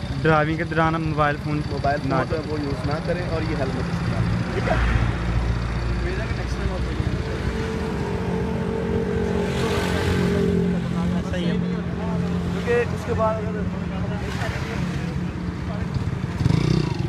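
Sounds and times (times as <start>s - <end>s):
people talking: 0.0s - 5.1s, 5.8s - 7.8s, 8.4s - 16.2s.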